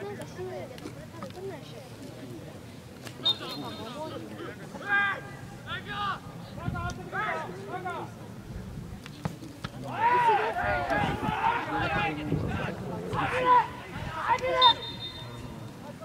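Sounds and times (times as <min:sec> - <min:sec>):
players shouting: 0:09.8 - 0:15.7.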